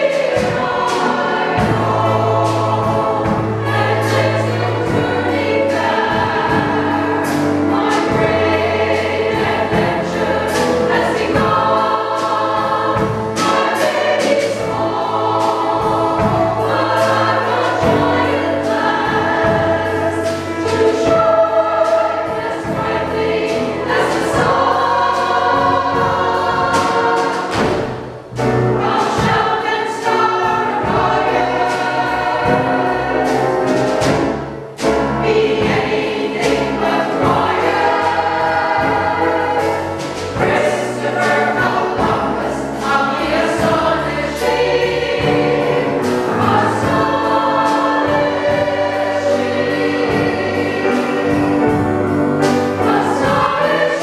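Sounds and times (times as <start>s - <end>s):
choir singing with accompaniment: 0.0s - 54.0s.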